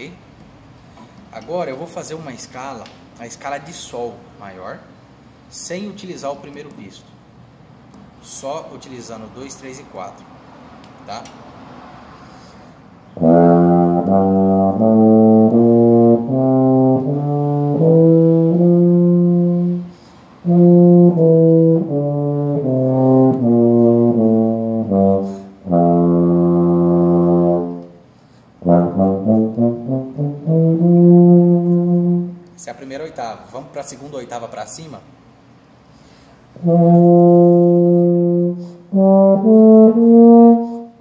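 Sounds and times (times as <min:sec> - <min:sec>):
euphonium playing a scale: 0:13.2 - 0:19.9, 0:28.6 - 0:32.4.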